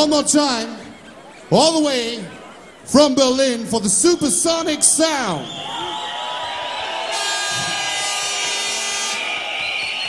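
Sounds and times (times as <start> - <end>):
crowd noise: 0.0 - 10.0
air horns blowing: 6.9 - 10.0.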